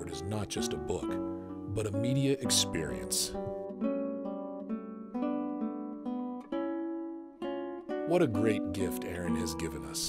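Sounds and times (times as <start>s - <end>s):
classical guitar fingerstyle: 0.0s - 10.0s.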